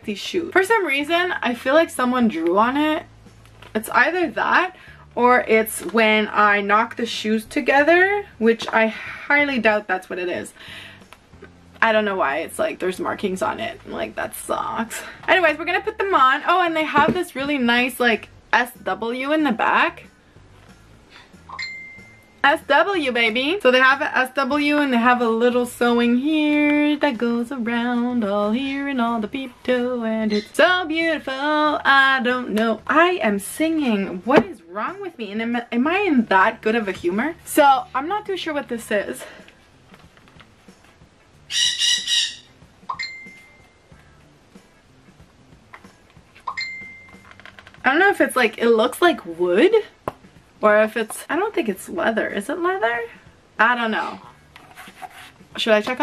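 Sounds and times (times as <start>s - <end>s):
high clear ding: 21.5s - 22.4s, 42.9s - 43.6s, 46.5s - 47.2s.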